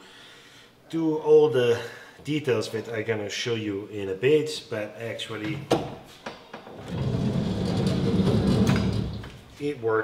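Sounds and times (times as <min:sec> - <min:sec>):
sliding door click: 0:06.7 - 0:09.4
sliding door rollers rumbling: 0:06.7 - 0:09.4.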